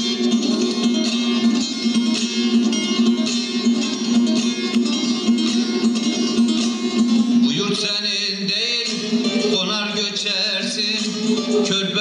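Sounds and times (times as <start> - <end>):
long-necked lute playing: 0.0 - 12.0
man singing: 7.4 - 12.0.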